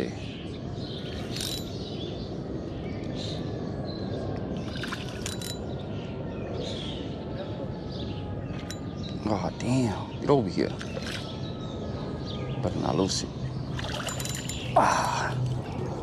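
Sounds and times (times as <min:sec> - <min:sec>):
reel clicks: 0:01.1 - 0:01.7, 0:04.8 - 0:05.6.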